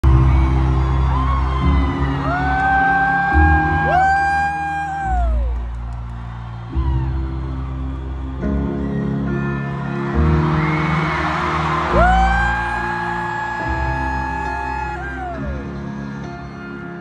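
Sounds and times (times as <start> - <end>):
crowd whooping: 0.0 - 16.8.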